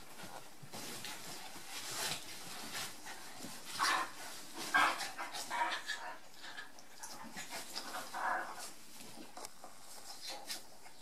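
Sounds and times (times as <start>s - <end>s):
bedding rustling: 0.0s - 11.0s.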